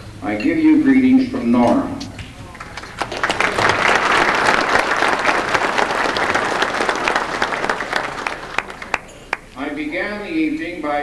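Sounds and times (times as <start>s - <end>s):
audience applauding: 2.5s - 9.6s.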